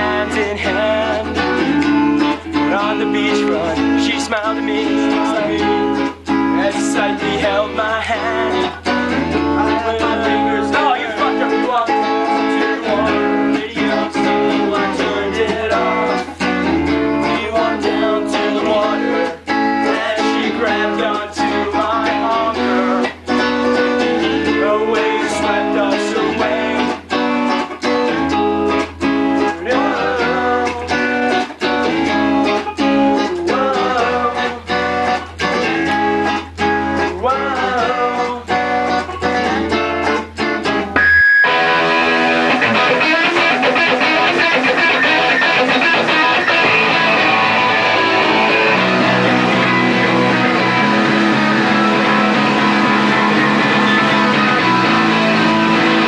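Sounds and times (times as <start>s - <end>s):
bass guitar line: 0.0s - 56.0s
strummed guitar chords: 0.0s - 56.0s.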